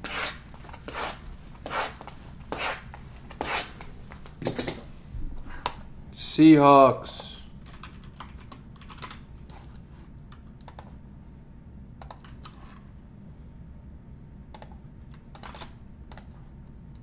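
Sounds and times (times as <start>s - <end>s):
typing on computer keyboard: 7.6s - 9.2s, 10.6s - 10.9s, 12.0s - 12.6s.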